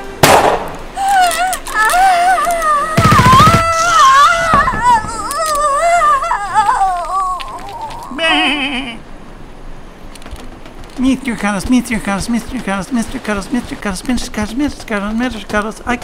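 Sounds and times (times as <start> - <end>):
gunshot crack: 0.2 - 0.8.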